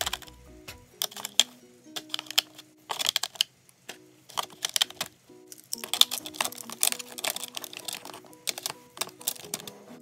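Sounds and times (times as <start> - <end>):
markers clicking against plastic tray: 0.0 - 0.4, 1.0 - 3.5, 4.3 - 9.8.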